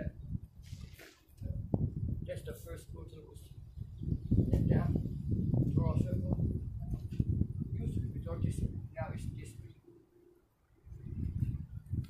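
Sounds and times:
wind rumble on microphone: 0.0 - 9.8, 10.7 - 12.0.

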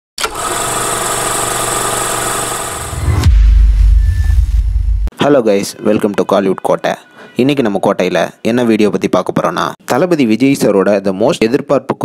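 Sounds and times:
deep bass rumble: 2.8 - 5.1.

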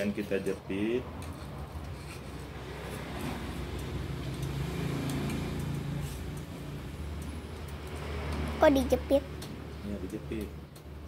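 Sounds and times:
passing vehicle engine hum: 0.7 - 10.6.

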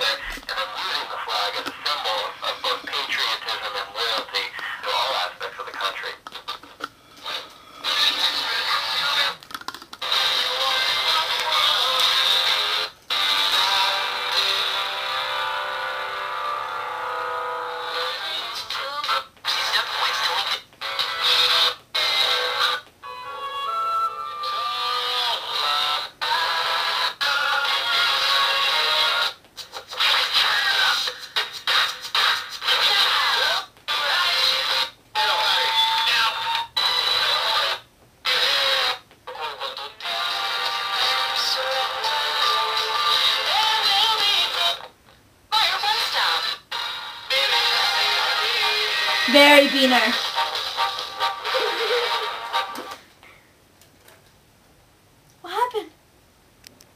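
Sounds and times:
radio music and talk from small speaker: 0.0 - 16.7, 17.7 - 22.8, 24.4 - 53.0.

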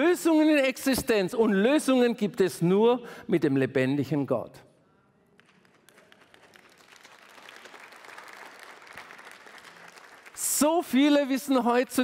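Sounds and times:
congregation applauding: 5.4 - 11.6.

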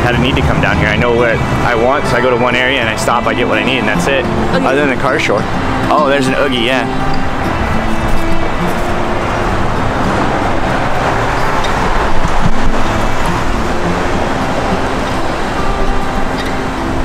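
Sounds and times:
faint music: 0.0 - 17.0
street traffic: 0.0 - 17.0
wind rumbling on microphone: 7.2 - 17.0.

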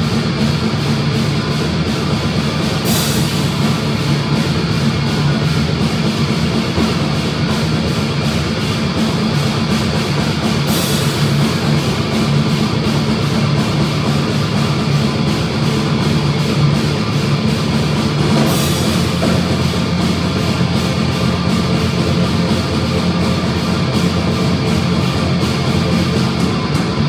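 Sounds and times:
cymbal burst: 0.0 - 27.0
distorted electric guitar: 0.0 - 27.0
drum kit fast beat: 0.0 - 27.0.

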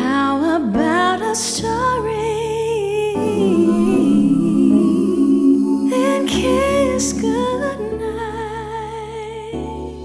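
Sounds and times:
soft backing music: 0.0 - 10.0
person humming a slow melody: 3.2 - 8.0.

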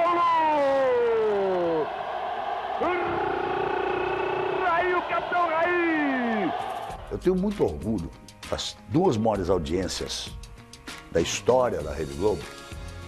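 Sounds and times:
stadium crowd noise: 0.0 - 7.0
commentator shouting goal: 2.8 - 6.6.

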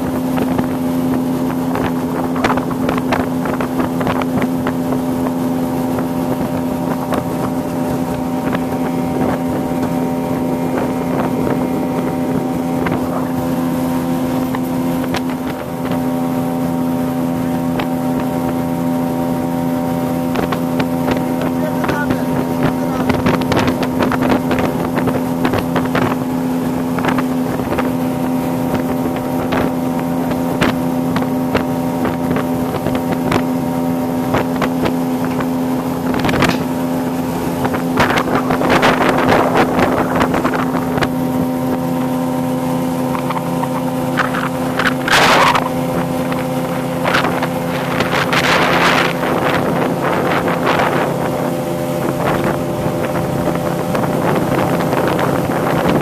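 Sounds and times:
motorboat engine droning: 0.0 - 56.0
water splashing against hull: 0.0 - 56.0
wind on microphone: 0.0 - 56.0.

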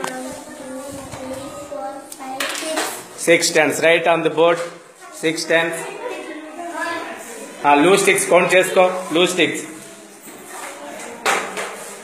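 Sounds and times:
murmur of children's voices: 0.0 - 12.0.

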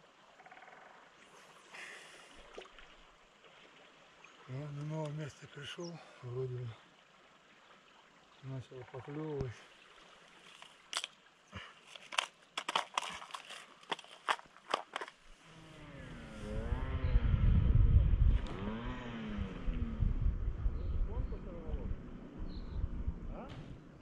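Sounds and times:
sharp clicks of fishing gear: 10.4 - 11.2, 11.8 - 15.2
low rumble with wavering tones: 15.4 - 24.0.

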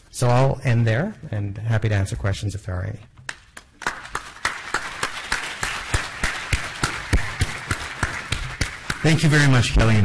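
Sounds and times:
close sharp claps: 3.2 - 9.8
audience applauding: 3.8 - 9.7.

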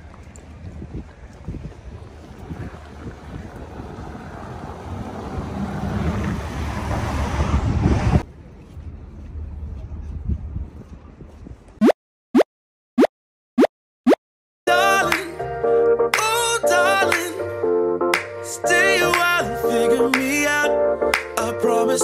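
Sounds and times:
wind noise on microphone: 0.0 - 11.8
car driving past: 2.8 - 8.2.

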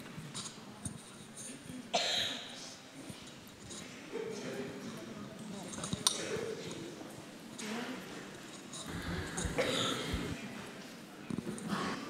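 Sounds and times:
murmur of audience chatting: 0.0 - 12.0.

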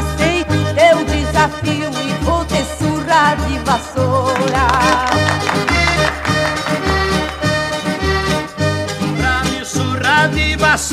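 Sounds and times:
guitar accompaniment: 0.0 - 10.9
piano accordion: 0.0 - 10.9.

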